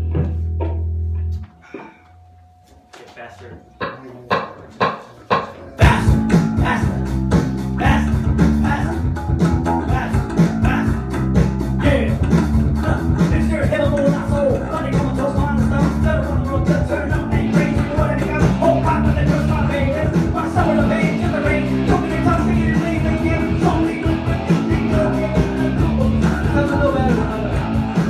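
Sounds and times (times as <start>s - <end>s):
drums: 0.0s - 1.6s, 3.7s - 28.0s
scattered taps: 3.7s - 5.6s
band playing: 5.8s - 28.0s
man singing into a microphone: 11.8s - 27.8s.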